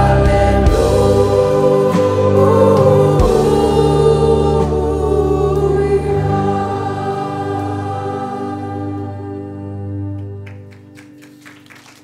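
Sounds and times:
choir singing a hymn: 0.0 - 10.1.

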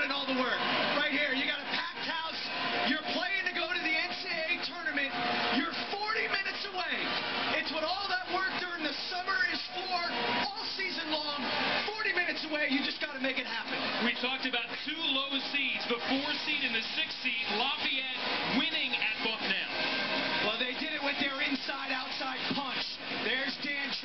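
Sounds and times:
arena crowd noise: 0.0 - 24.0
men's voices on television: 0.0 - 24.0.

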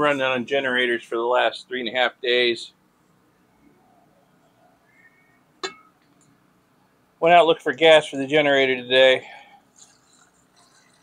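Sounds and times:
glass beakers clinking: 5.6 - 6.0.

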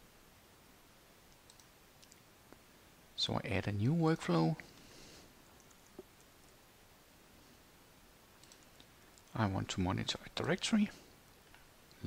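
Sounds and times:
faint computer mouse clicks: 1.3 - 2.2, 5.6 - 6.6, 8.4 - 9.4.

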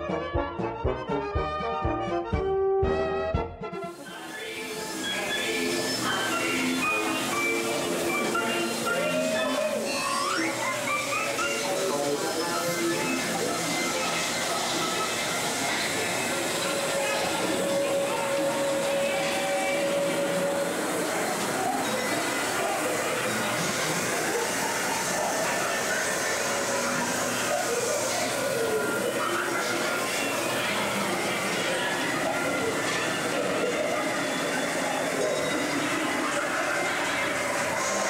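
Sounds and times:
muffled show voices: 3.9 - 38.0
ride vehicle running on track: 4.1 - 38.0.

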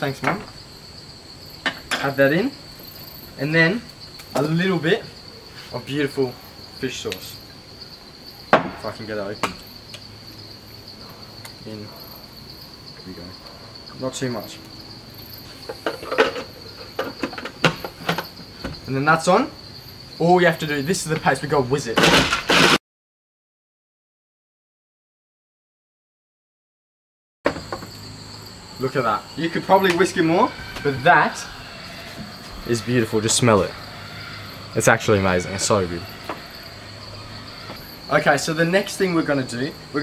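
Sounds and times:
insect chirring: 0.0 - 22.8, 27.5 - 40.0.

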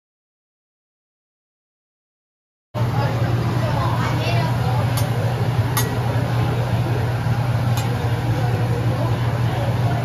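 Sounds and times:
restaurant background noise: 2.8 - 10.0.

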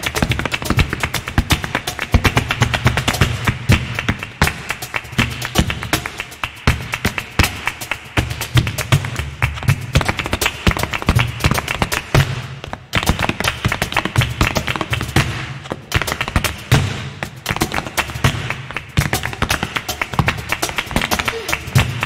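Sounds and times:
shoes stamping on stage floor: 0.0 - 22.0.

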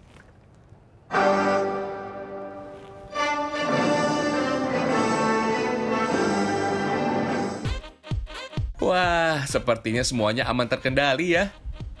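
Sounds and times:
orchestral chords over loudspeakers: 1.1 - 7.7.

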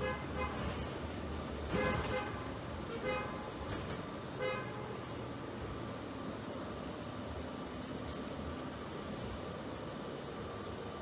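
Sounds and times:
bus horn toots: 0.0 - 0.8, 1.7 - 3.6, 4.4 - 5.0
bus engine hum: 0.0 - 11.0.

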